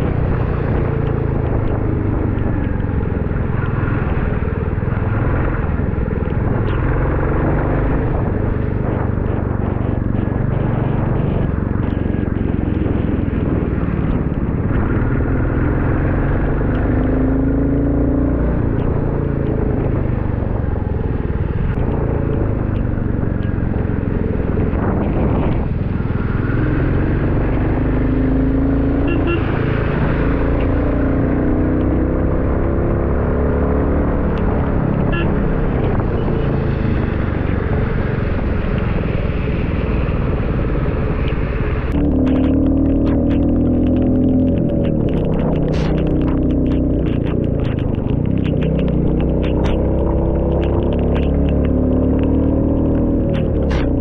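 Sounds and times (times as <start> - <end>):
motorcycle engine running: 0.0 - 54.0
wind noise on microphone: 0.0 - 54.0.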